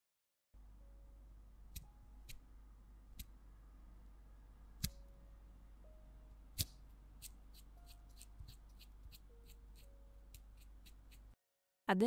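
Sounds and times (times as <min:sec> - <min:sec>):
low steady hum: 0:00.6 - 0:11.4.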